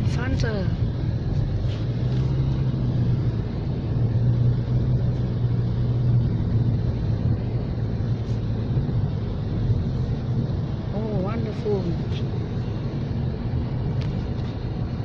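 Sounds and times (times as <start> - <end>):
car engine and tyre drone: 0.0 - 15.0.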